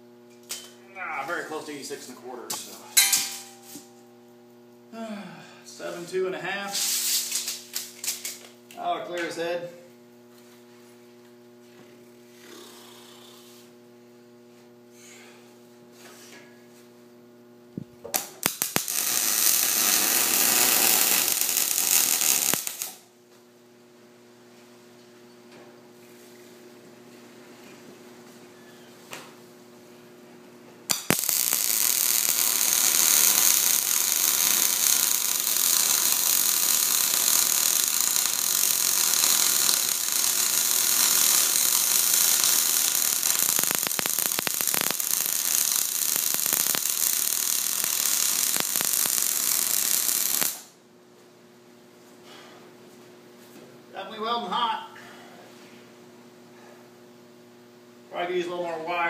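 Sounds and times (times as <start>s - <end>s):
welding arc crackling sizzle: 0.0s - 4.0s, 5.8s - 9.7s, 18.0s - 23.1s, 30.9s - 50.8s
steady low hum: 0.0s - 59.0s
man talking: 0.8s - 3.0s, 5.6s - 6.8s, 8.8s - 9.8s, 53.9s - 55.0s, 58.1s - 59.0s.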